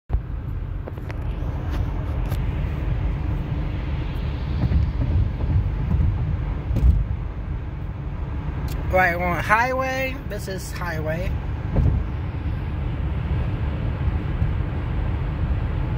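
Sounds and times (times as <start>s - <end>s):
car road and engine rumble: 0.1s - 15.9s.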